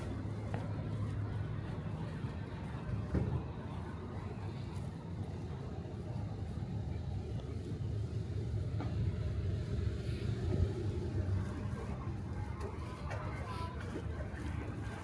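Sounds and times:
low steady street rumble: 0.0 - 15.0.

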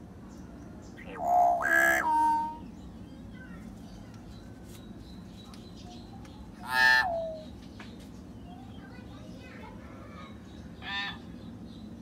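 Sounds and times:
myna bird calling: 0.9 - 2.8, 5.7 - 7.7.

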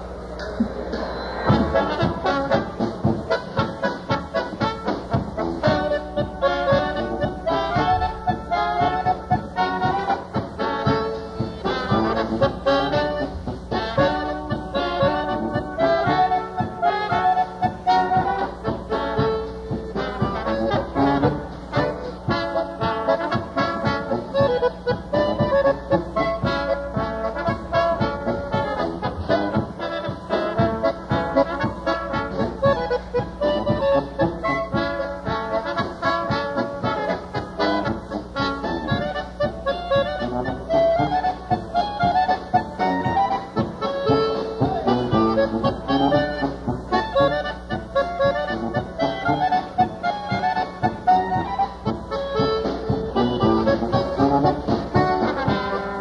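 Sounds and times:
polka band playing: 0.0 - 56.0
concertina melody: 1.0 - 56.0.

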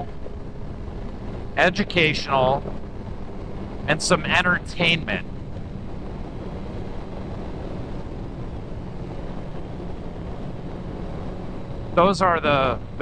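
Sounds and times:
wind rushing over microphone: 0.0 - 13.0.

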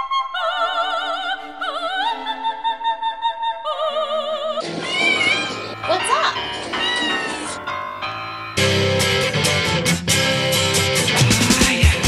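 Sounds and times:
background music with singing: 0.0 - 12.0
cat meowing: 4.6 - 7.7.

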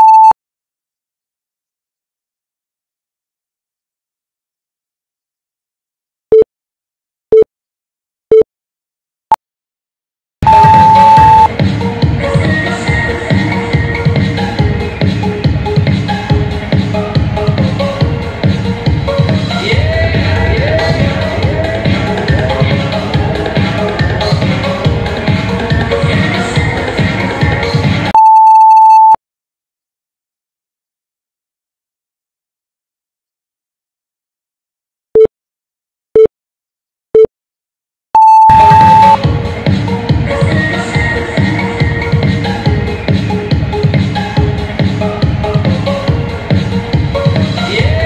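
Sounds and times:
short timer beeps: 10.5 - 11.5, 38.2 - 39.2
upbeat electronic workout music: 10.5 - 28.1, 38.5 - 48.0.

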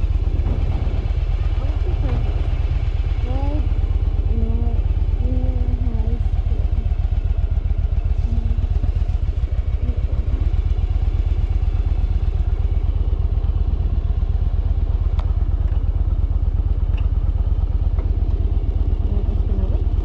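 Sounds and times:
motorcycle engine idling: 0.0 - 20.0.

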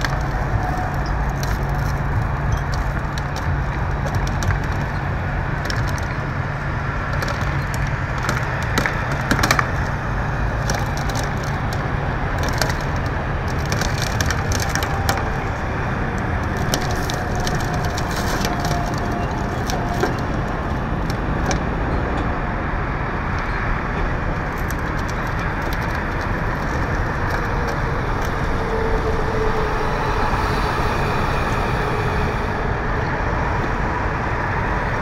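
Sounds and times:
metal body panels crumpling: 0.0 - 21.8, 24.3 - 29.1
low rumble: 0.0 - 35.0
broken glass crunching: 7.1 - 15.6, 16.4 - 21.6.

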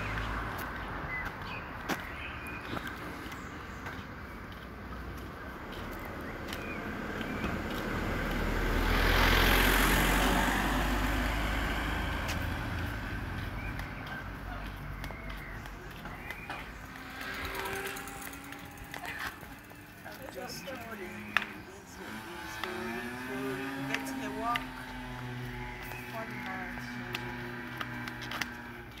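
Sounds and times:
vehicle driving past: 5.1 - 29.0.

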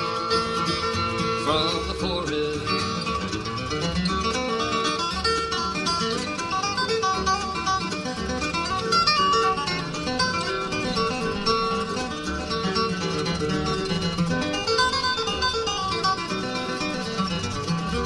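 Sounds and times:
picked acoustic guitar: 0.0 - 18.0.

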